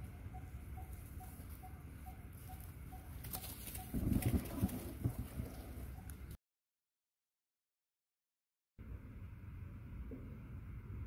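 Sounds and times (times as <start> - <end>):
dove cooing: 0.0 - 6.1.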